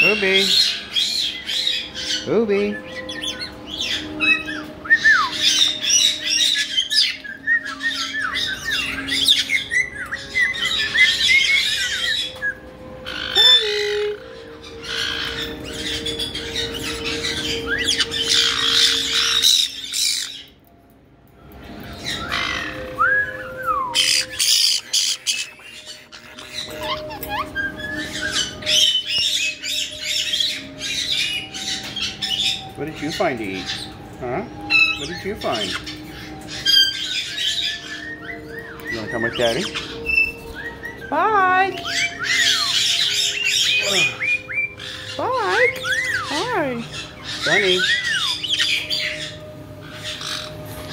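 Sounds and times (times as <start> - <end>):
parrot chirping and squawking: 0.0 - 20.7, 21.6 - 23.0, 23.9 - 50.9.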